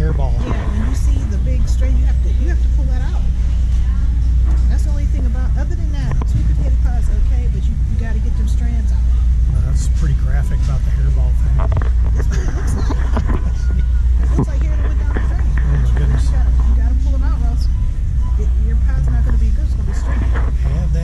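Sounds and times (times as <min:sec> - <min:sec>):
people talking indistinctly: 0:00.0 - 0:21.0
steady low rumble: 0:00.0 - 0:21.0.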